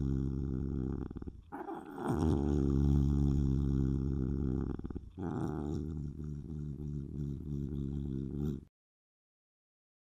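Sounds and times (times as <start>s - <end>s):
animal growling: 0.0s - 8.7s.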